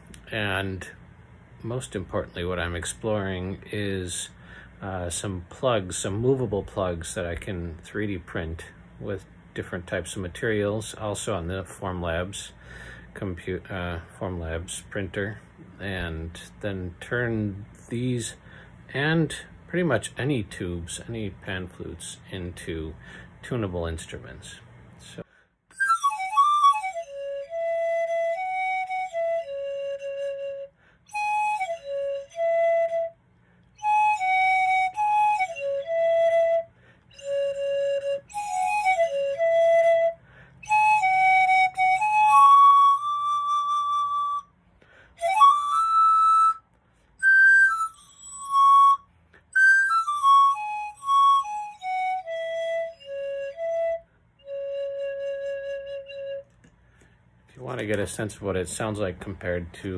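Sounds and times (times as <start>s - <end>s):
pan flute melody: 25.7s - 44.6s, 45.2s - 56.7s.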